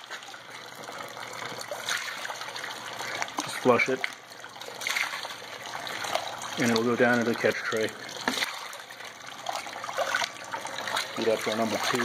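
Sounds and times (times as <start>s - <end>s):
water splashing and running: 0.0s - 12.0s.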